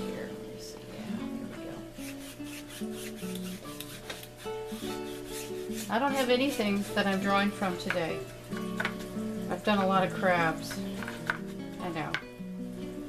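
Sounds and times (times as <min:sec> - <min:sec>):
soft background music: 0:00.0 - 0:13.0
paintbrush scrubbing on canvas: 0:02.0 - 0:07.5.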